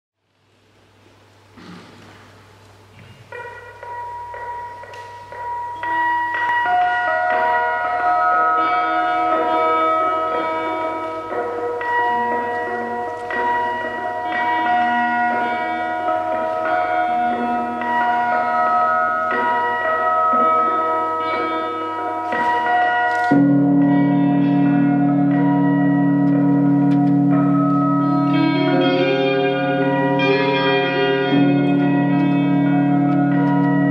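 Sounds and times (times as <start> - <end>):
ambient electric guitar notes: 3.0 - 33.9
low sustained guitar chord: 3.3 - 33.9.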